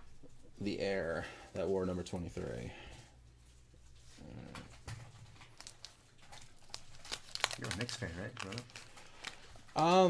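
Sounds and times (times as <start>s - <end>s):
wax paper pack rustling: 3.5s - 10.0s.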